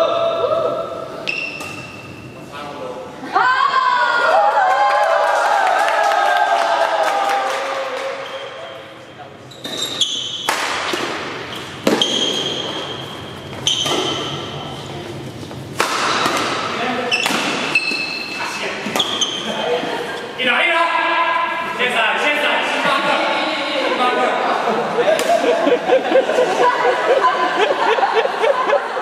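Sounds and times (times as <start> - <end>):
shoes squeaking on court floor: 8.2 - 10.5, 11.4 - 16.3, 17.0 - 19.7
racket hitting shuttlecock: 10.4 - 13.0, 13.6 - 14.4, 15.7 - 18.2, 18.9 - 19.4
spectators' voices: 18.7 - 29.0.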